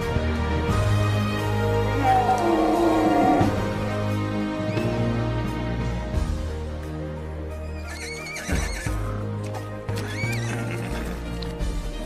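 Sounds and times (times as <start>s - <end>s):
background film music: 0.0s - 12.0s
horse whinnying: 7.7s - 9.0s, 9.9s - 11.2s.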